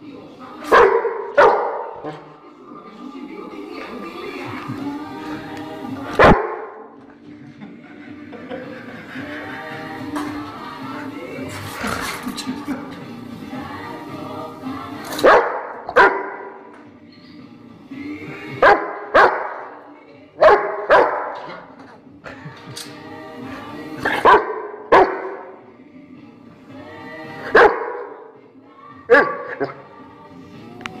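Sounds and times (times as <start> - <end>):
music playing: 0.0 - 31.0
dog barking: 0.7 - 2.2, 6.2 - 6.7, 15.2 - 16.6, 18.6 - 19.7, 20.4 - 21.6, 24.1 - 25.5, 27.5 - 28.1, 29.1 - 29.8.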